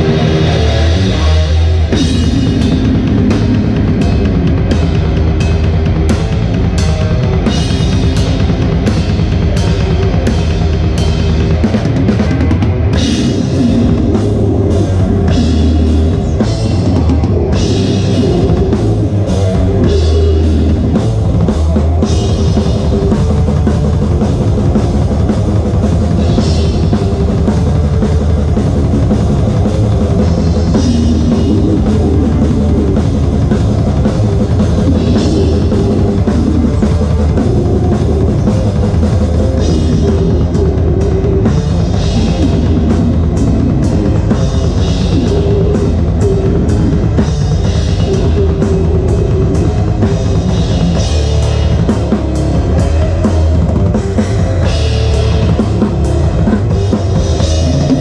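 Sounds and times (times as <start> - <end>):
metal band playing: 0.0 - 58.0.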